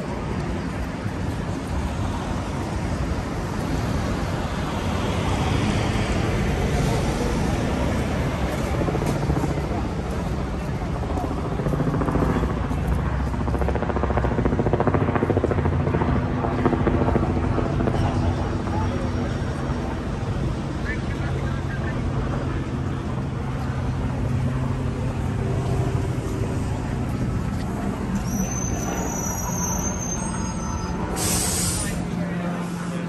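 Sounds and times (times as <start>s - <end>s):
road traffic: 0.0s - 33.0s
voices of passers-by: 0.0s - 33.0s.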